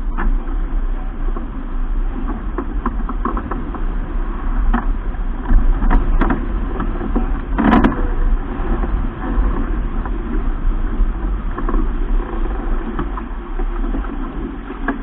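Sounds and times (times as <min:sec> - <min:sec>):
water rushing along hull: 0:00.0 - 0:15.0
wind buffeting microphone: 0:00.0 - 0:15.0.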